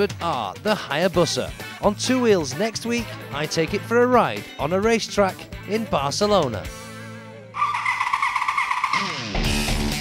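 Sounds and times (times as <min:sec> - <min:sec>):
theme music: 0:00.0 - 0:10.0
motorcycle engine at high revs: 0:07.8 - 0:09.7.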